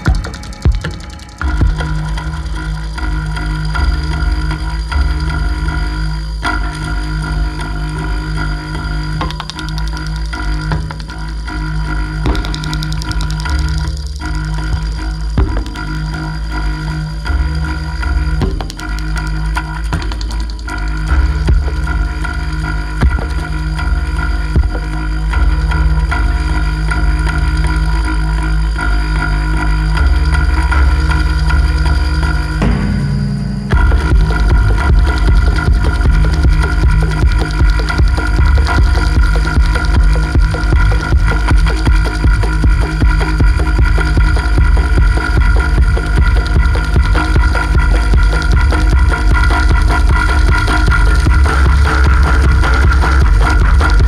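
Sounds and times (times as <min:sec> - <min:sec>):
droning tones: 0:00.0 - 0:54.0
steady bass pulse: 0:00.0 - 0:54.0.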